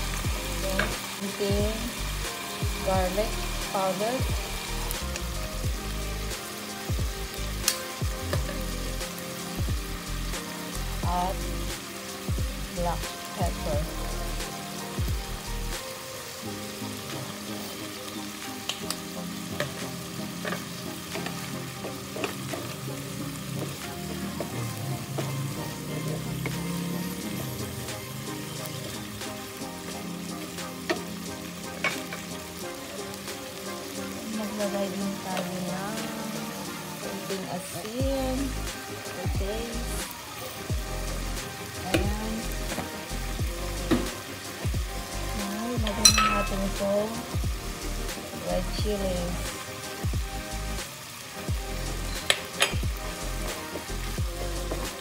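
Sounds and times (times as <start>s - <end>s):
vegetables sizzling in frying pan: 0.0s - 55.0s.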